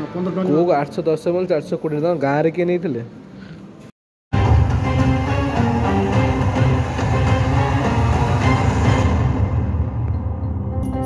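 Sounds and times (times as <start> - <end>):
film soundtrack music with heavy bass: 4.4 - 11.0.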